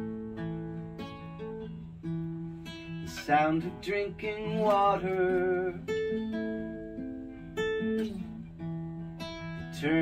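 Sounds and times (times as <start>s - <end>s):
acoustic guitar playing: 0.0s - 10.0s.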